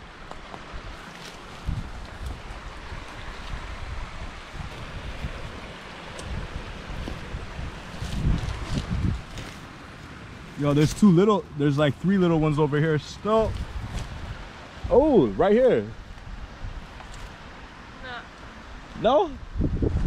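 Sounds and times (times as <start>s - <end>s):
steps through grass: 0.4s - 12.1s, 13.2s - 14.4s
wind buffeting microphone: 0.6s - 9.9s, 10.5s - 17.0s, 19.0s - 20.0s.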